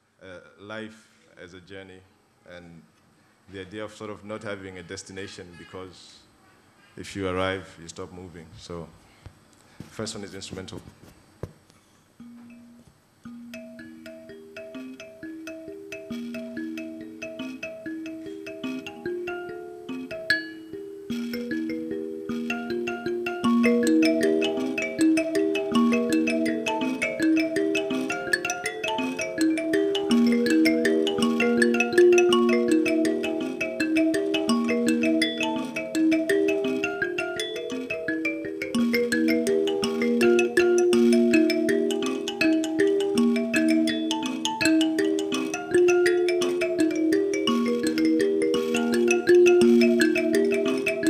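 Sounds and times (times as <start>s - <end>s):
mbira plucked notes: 12.2s - 51.0s.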